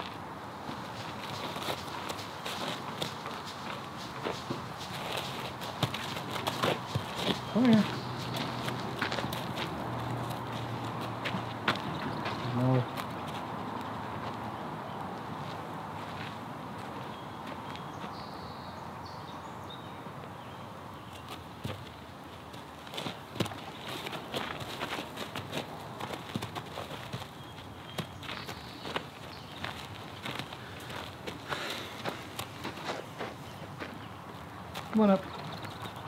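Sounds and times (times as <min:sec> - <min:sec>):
horse hooves on gravel: 0:00.0 - 0:14.6, 0:21.2 - 0:36.0
outdoor background hiss: 0:00.0 - 0:36.0
footsteps scuffing on gravel: 0:00.7 - 0:12.4, 0:22.8 - 0:34.9.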